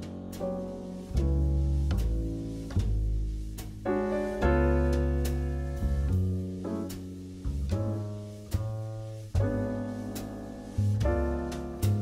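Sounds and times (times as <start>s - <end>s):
low bass notes: 0.0s - 12.0s.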